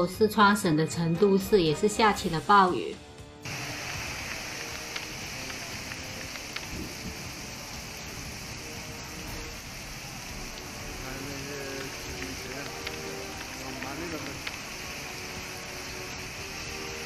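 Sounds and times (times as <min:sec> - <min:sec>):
heavy rain on a road: 0:03.5 - 0:17.0.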